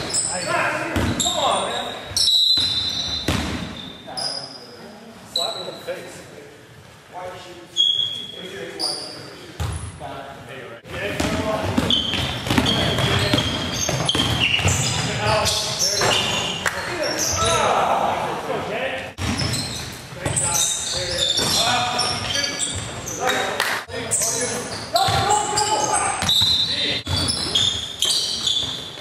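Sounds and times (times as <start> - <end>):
basketball bouncing on wooden floor: 11.2 - 16.2, 19.2 - 20.4
players calling out: 11.2 - 28.6.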